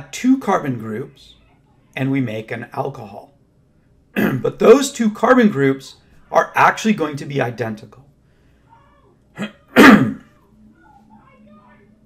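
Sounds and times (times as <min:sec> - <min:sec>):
man sneezing: 0:04.2 - 0:04.5, 0:09.4 - 0:10.2.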